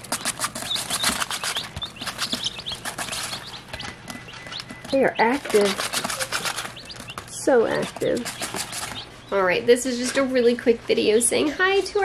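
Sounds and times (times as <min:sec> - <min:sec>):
chicks peeping: 0:00.0 - 0:11.5
chicks scratching and pecking: 0:00.0 - 0:12.0.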